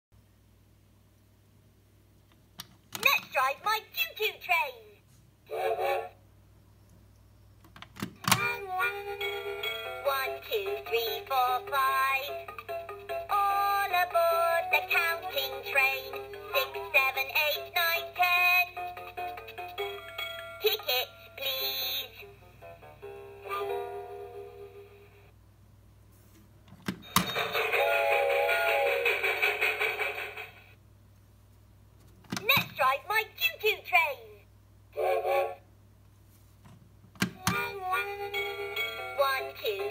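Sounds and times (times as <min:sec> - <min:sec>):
toy electronic voice speaking: 0:03.0 - 0:04.8, 0:37.4 - 0:38.2.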